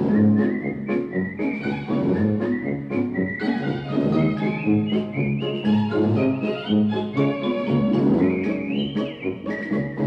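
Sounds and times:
whistled melody over bass and chords: 0:00.0 - 0:10.0.

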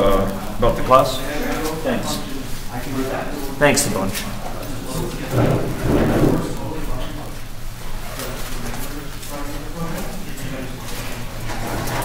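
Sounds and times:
muffled distant voices talking: 0:00.0 - 0:12.0
steady low hum: 0:00.0 - 0:12.0.

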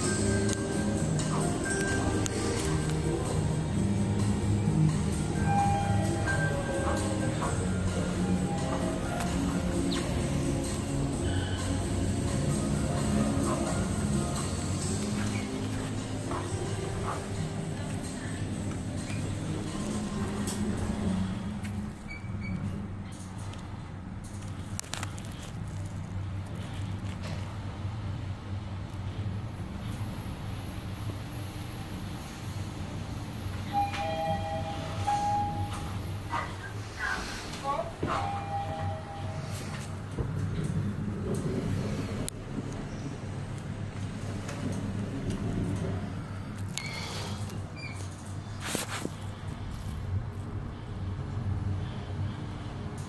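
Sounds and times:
elevator hum: 0:00.0 - 0:24.8, 0:27.4 - 0:48.6.

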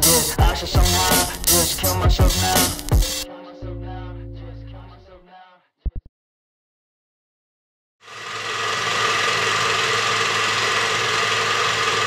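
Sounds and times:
mechanical whirr with low hum: 0:08.0 - 0:12.0.

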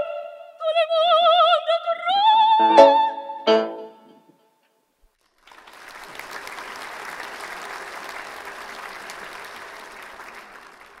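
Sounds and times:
audience applauding: 0:05.1 - 0:11.0.

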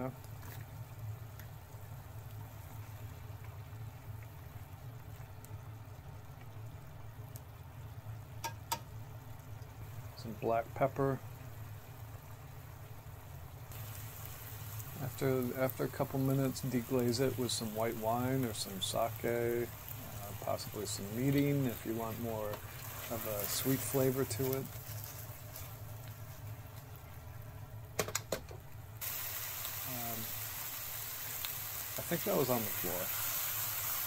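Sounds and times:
food sizzling in frying pan: 0:00.0 - 0:34.0
low steady hum: 0:00.0 - 0:34.0.

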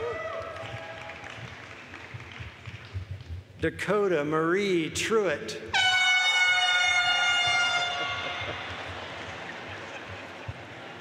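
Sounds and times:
handheld air horn: 0:05.7 - 0:08.6.

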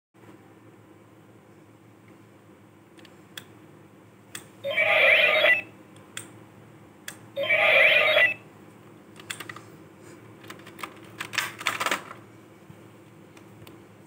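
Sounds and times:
toy belt electronic sound effect: 0:04.6 - 0:05.7, 0:07.4 - 0:08.4.

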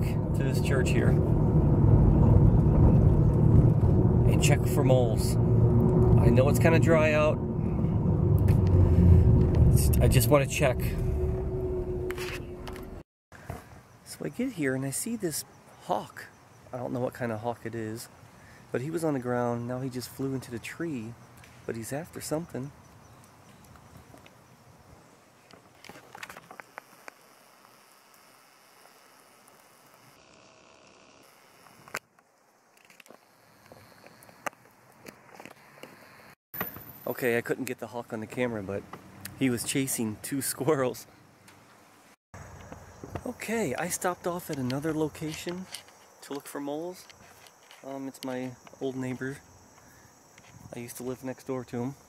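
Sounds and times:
car cabin rumble: 0:00.0 - 0:13.0.

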